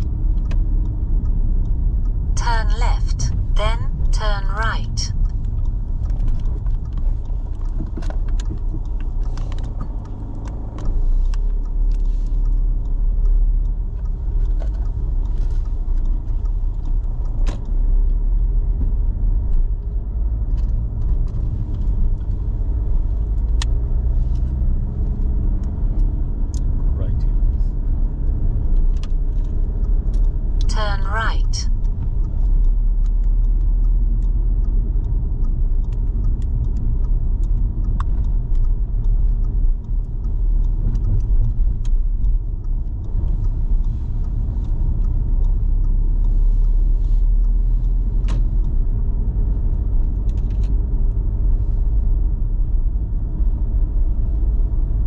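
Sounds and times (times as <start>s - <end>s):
car cabin road and engine rumble: 0.0s - 55.0s.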